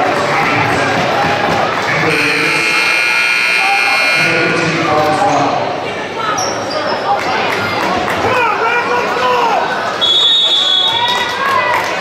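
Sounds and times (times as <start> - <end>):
crowd chatter: 0.0 - 12.0
scoreboard buzzer: 2.0 - 4.7.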